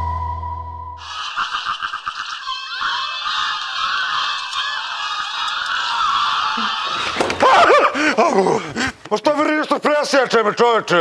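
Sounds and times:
faint wavering voices: 1.0 - 7.2.

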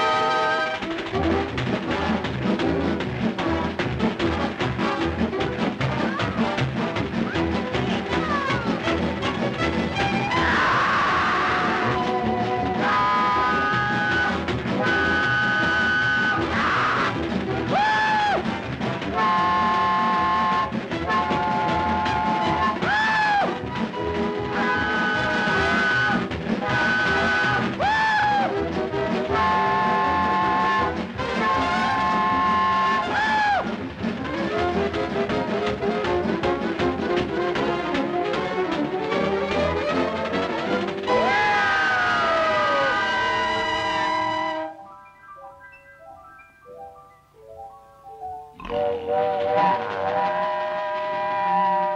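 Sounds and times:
orchestral cartoon music with brass: 0.0 - 45.6, 48.2 - 51.9
swooping whistle notes: 10.2 - 17.2, 19.1 - 28.5, 29.3 - 33.6, 41.1 - 46.5, 48.6 - 51.9.

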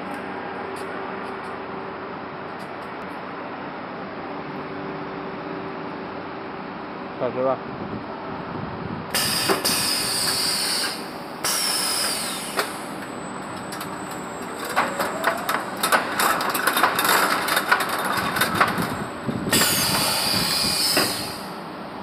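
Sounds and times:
wire mesh machine clattering: 13.7 - 19.0.

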